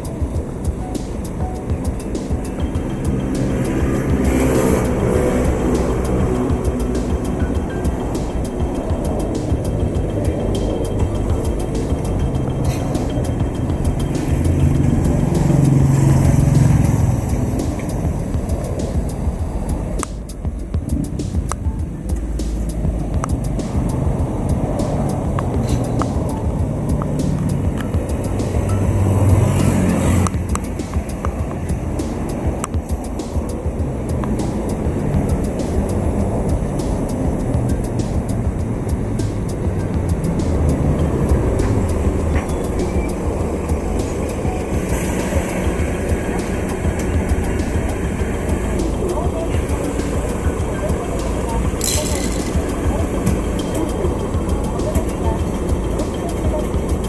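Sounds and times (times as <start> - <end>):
road vehicles passing: 0.0 - 57.0.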